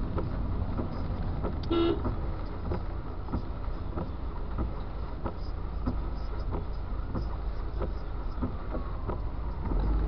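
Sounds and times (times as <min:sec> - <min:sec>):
car cabin rumble: 0:00.0 - 0:10.0
turn signal ticking: 0:00.0 - 0:10.0.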